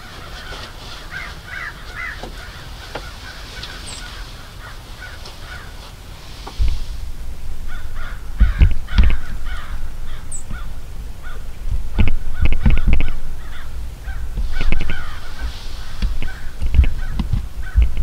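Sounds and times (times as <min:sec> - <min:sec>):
crows cawing: 0:00.0 - 0:06.1, 0:07.6 - 0:18.0
low rumble on microphone: 0:00.0 - 0:18.0
loud low thumps: 0:06.6 - 0:15.0.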